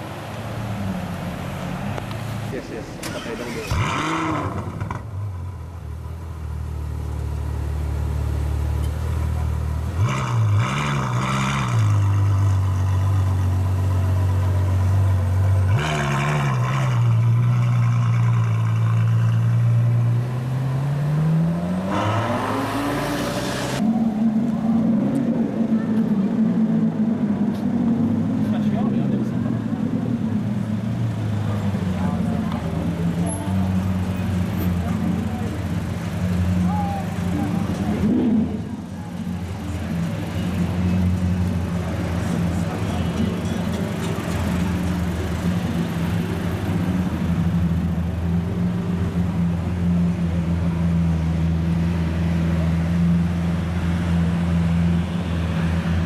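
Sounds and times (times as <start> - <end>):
car engine revving: 1.5 - 5.5, 9.8 - 50.8.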